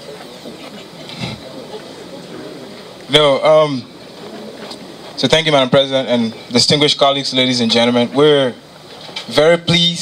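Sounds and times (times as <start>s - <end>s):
faint voices through a pa: 0.0s - 3.0s.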